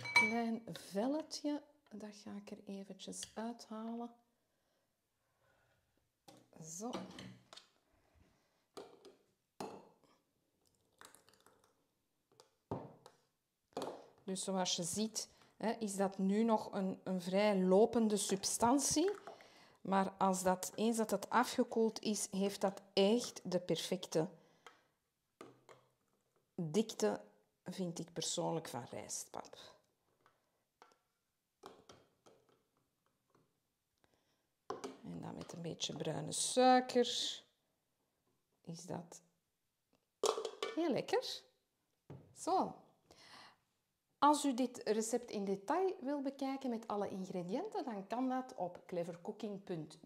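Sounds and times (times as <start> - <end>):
metal bowl knocking and clattering: 0.0 - 0.4, 40.2 - 40.8.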